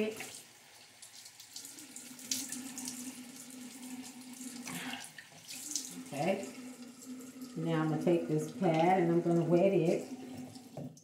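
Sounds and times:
sink tap running: 0:00.0 - 0:11.0.

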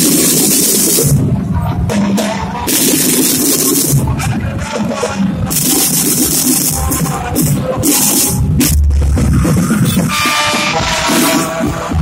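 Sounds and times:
drum band playing: 0:00.0 - 0:01.3, 0:02.1 - 0:04.3, 0:05.5 - 0:12.0.

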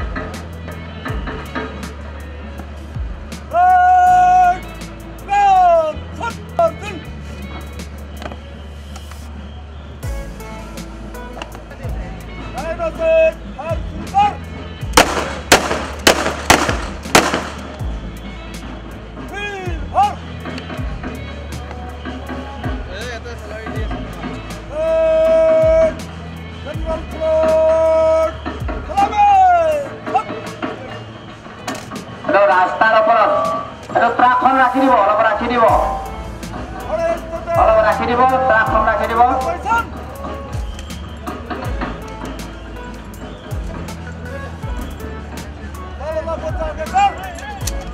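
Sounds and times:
echoing rifle shots: 0:15.0 - 0:17.8.

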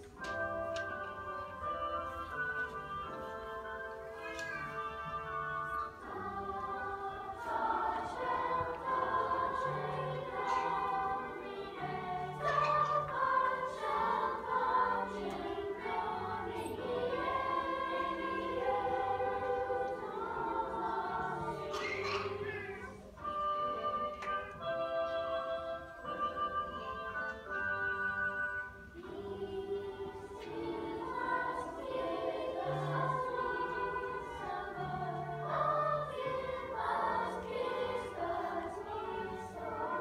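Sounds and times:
choir singing held notes: 0:00.1 - 0:40.0.

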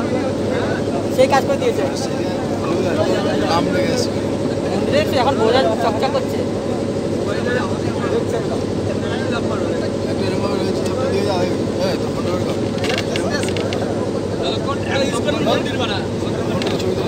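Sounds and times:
boat engine droning: 0:00.0 - 0:17.0
people talking: 0:00.0 - 0:17.0.

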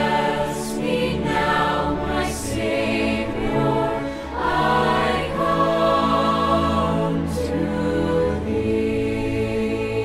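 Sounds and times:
choir singing a hymn: 0:00.0 - 0:10.0.

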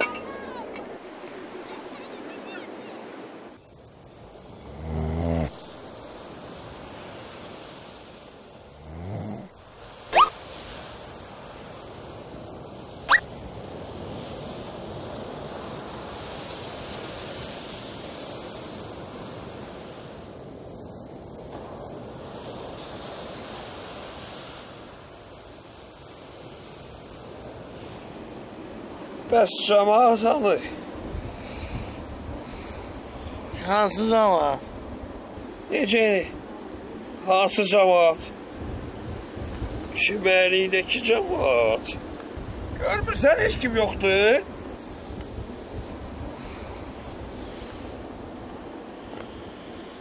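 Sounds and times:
sea surf on beach: 0:00.0 - 0:50.0.

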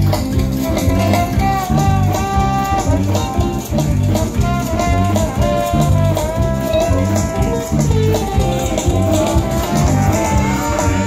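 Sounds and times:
bass guitar: 0:00.0 - 0:11.0
drums: 0:00.0 - 0:11.0
electric guitar: 0:00.0 - 0:11.0
melody line bending notes: 0:00.0 - 0:11.0.

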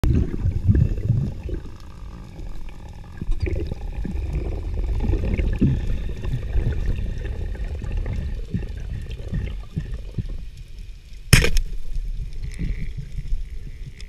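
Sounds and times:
underwater rumble of rushing water: 0:00.0 - 0:14.0.

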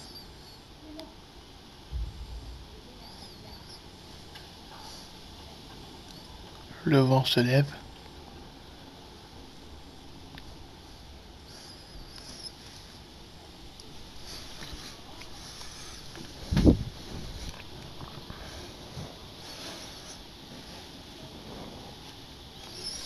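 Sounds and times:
low wind noise: 0:01.4 - 0:06.8, 0:13.0 - 0:19.6
loud low thud: 0:01.9 - 0:03.8.

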